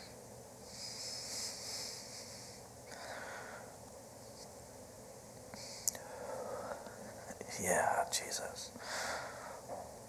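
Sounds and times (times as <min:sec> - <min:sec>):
man whispering: 0:05.8 - 0:08.8.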